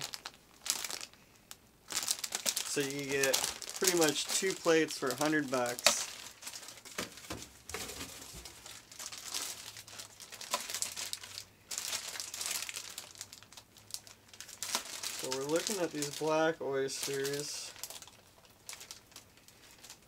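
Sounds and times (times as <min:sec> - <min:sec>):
plastic bags crinkling: 0:00.0 - 0:20.0.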